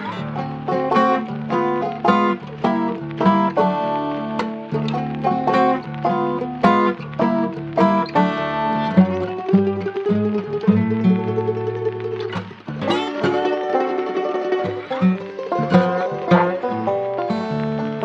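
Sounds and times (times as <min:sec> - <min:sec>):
plucked strings picking notes: 0:00.0 - 0:18.0.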